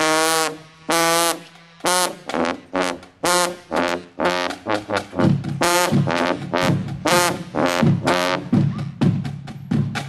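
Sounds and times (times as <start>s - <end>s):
tuba playing short brassy notes: 0.0s - 9.0s.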